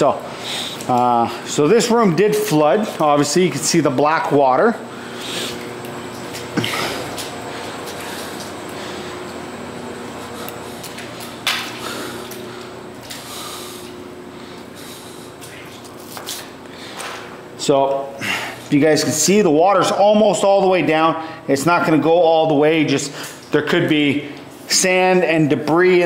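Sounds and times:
steady mechanical hum: 0.0s - 26.0s.

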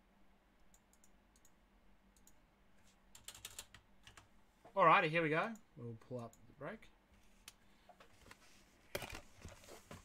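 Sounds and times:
computer keyboard clicks: 3.1s - 4.3s.

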